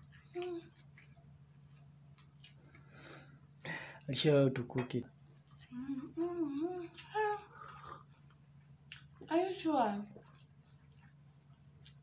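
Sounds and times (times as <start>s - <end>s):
woman humming mm-hmm: 5.7s - 8.1s.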